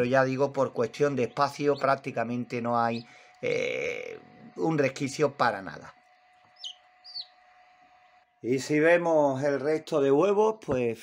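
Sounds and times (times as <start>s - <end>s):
faint steady hum: 0.0s - 11.0s
chick peeping: 0.5s - 3.1s, 6.3s - 8.2s.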